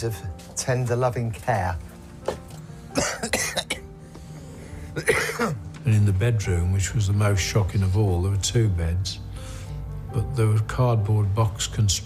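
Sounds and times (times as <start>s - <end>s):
faint background music: 0.0s - 12.0s
man coughing: 3.0s - 3.9s, 5.0s - 5.6s.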